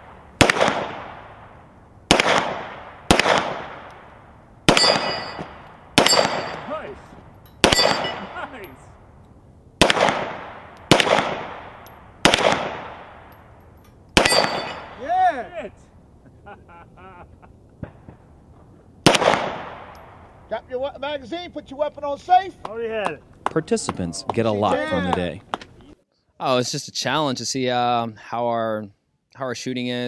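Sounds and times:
pistol shots: 0:00.4 - 0:01.4, 0:02.1 - 0:04.1, 0:04.7 - 0:06.8, 0:07.6 - 0:08.5, 0:09.8 - 0:13.4, 0:14.2 - 0:15.0, 0:19.0 - 0:20.2
steel plate ringing: 0:04.8 - 0:06.8, 0:07.4 - 0:08.7, 0:14.2 - 0:15.0.

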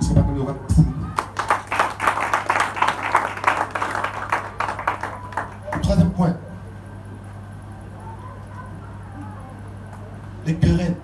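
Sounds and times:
congregation clapping: 0:01.2 - 0:06.0.

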